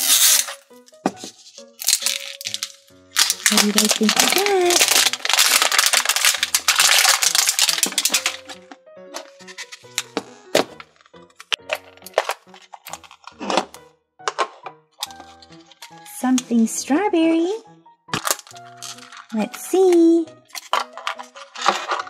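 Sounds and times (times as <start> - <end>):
plastic wrapper crinkling: 0.0 - 0.8, 1.6 - 10.1, 10.7 - 13.7, 18.2 - 22.0
background music: 0.0 - 22.0
plastic case clicks: 6.8 - 16.0, 20.5 - 22.0.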